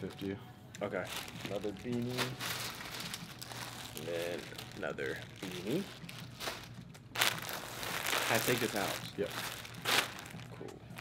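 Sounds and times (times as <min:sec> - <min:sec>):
plastic bags crinkling: 0:01.0 - 0:11.0.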